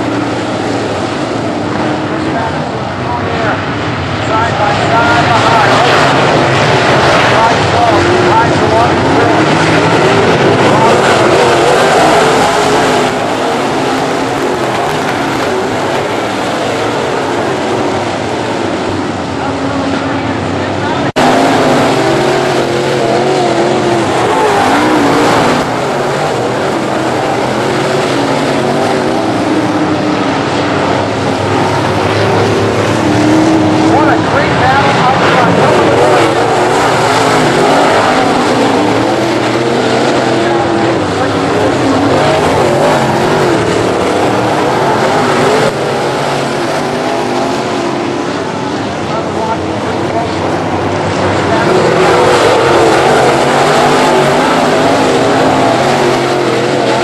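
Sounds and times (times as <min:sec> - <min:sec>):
race car engines: 0:00.0 - 0:57.0.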